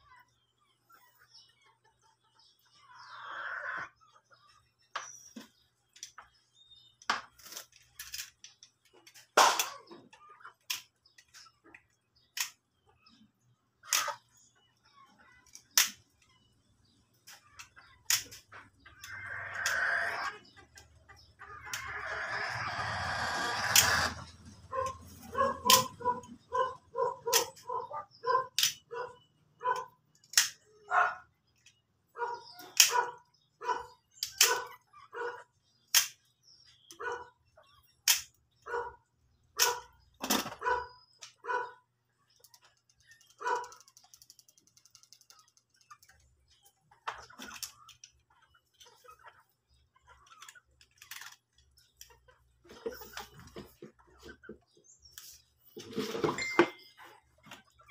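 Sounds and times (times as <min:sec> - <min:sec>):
dog barking: 0:24.7 - 0:30.0, 0:30.8 - 0:31.3, 0:32.2 - 0:35.5, 0:37.0 - 0:37.4, 0:38.6 - 0:39.0, 0:39.6 - 0:40.0, 0:40.6 - 0:41.8, 0:43.4 - 0:43.8.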